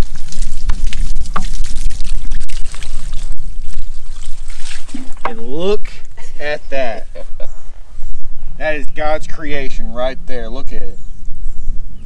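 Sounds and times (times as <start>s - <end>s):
water splashing on wood: 0.0s - 5.6s.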